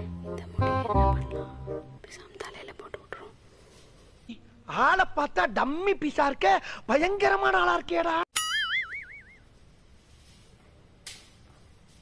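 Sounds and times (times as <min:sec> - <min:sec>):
person whispering: 0:02.0 - 0:03.4.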